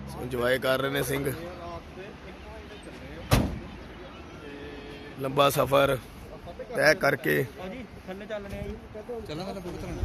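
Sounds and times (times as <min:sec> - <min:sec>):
sharp thump: 0:03.3 - 0:03.7.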